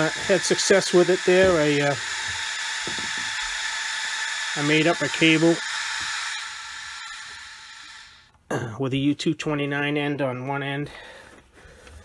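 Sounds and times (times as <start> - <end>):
radio receiver hiss: 0.0 - 8.3.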